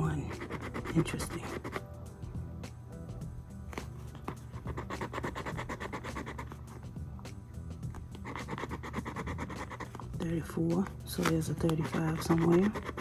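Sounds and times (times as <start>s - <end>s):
scratch-off ticket being scratched: 0.0s - 1.9s, 3.8s - 6.8s, 8.0s - 10.2s, 11.2s - 13.0s.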